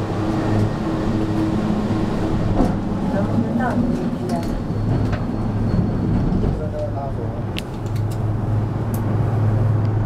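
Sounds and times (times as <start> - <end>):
cable car cabin hum and rumble: 0.0 - 10.0.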